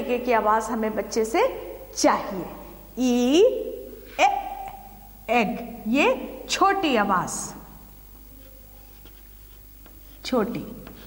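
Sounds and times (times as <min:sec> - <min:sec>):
chalk scratching on chalkboard: 0:08.3 - 0:11.0.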